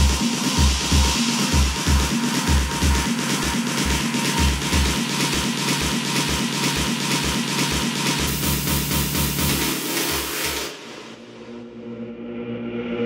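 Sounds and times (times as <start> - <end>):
techno kick drum: 0.0 - 11.5
dense hi-hats: 0.0 - 13.0.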